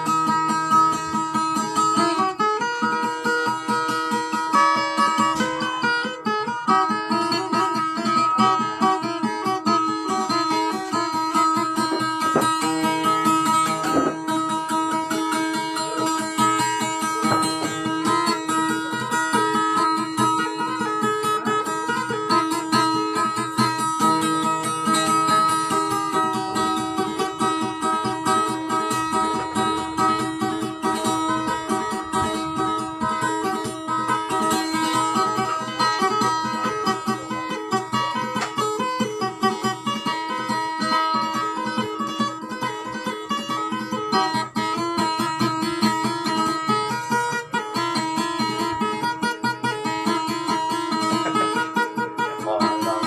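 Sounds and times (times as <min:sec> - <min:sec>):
plucked string instrument: 0:00.0 - 0:53.0.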